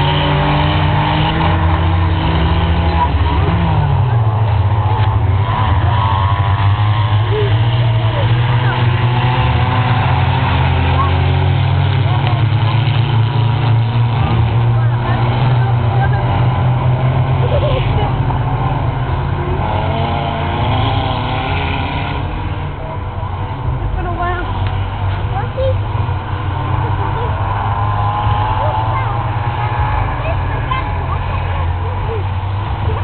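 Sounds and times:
racing car engines revving: 0.0 - 33.0.

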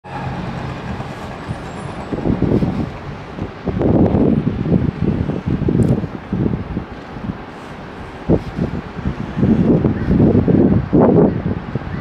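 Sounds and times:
city traffic hum: 0.0 - 12.0
wind buffeting microphone: 0.0 - 12.0.

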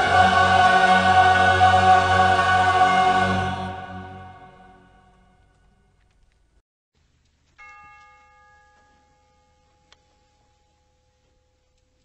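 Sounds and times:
bell-like chime ringing: 7.6 - 10.0.

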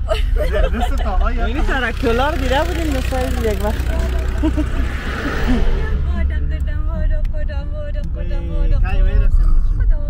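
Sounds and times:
car road and engine rumble: 0.0 - 10.0
people talking: 0.1 - 4.6, 5.5 - 10.0.

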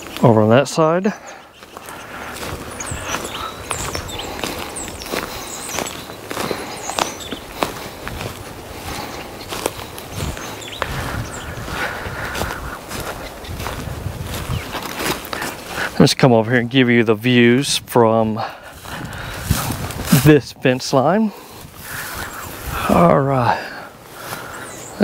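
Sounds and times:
footsteps on leaf litter: 0.0 - 25.0.

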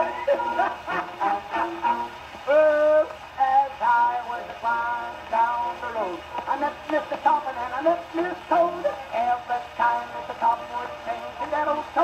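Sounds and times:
man singing on gramophone record: 0.0 - 12.0.

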